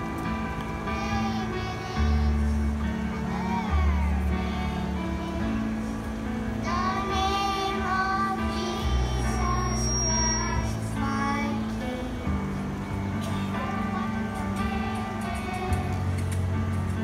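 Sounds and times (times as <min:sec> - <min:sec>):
children singing: 0:00.8 - 0:05.9, 0:06.6 - 0:12.2, 0:13.2 - 0:16.2.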